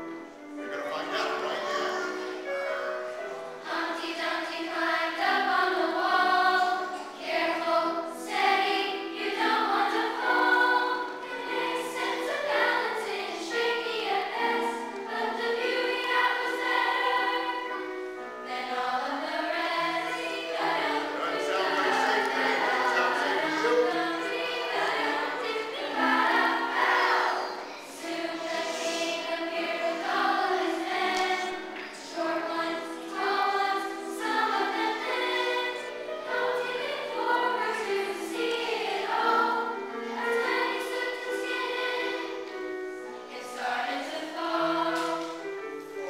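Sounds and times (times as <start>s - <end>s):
children's choir singing: 0.0s - 46.0s.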